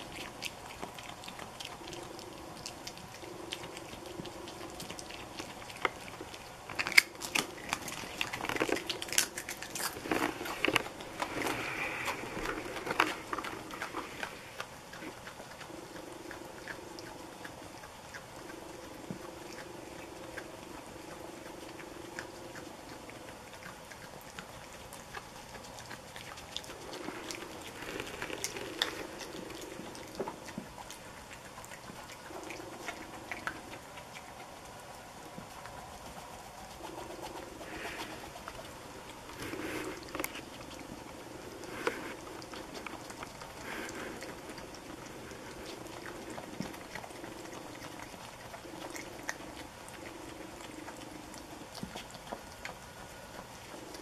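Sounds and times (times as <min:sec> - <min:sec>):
animal crunching taco shell: 0:00.0 - 0:54.0.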